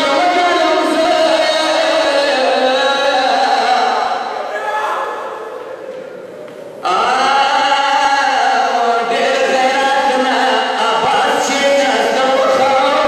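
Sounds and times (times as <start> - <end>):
man chanting a lament: 0.0 - 4.5, 6.8 - 13.0.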